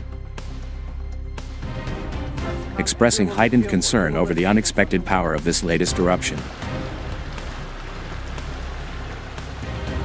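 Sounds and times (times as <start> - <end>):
background music with drone: 0.0 - 10.0.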